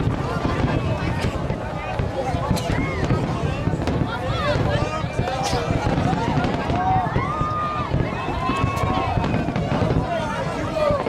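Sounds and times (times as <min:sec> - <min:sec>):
fireworks bursting and crackling: 0:00.0 - 0:11.0
people exclaiming: 0:02.4 - 0:11.0.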